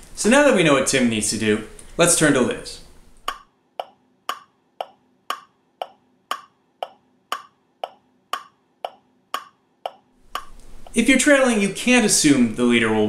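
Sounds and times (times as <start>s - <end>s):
sharp ticking: 3.2s - 11.1s.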